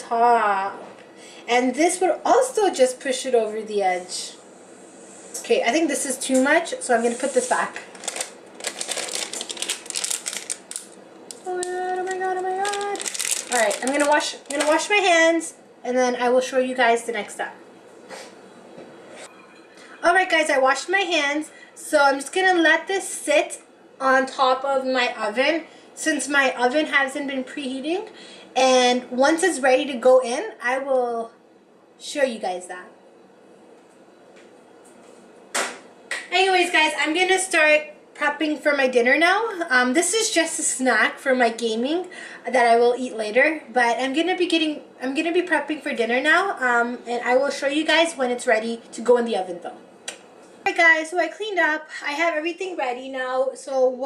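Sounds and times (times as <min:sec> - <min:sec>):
paper packet crinkling: 0:07.7 - 0:14.9
woman humming: 0:11.4 - 0:12.8.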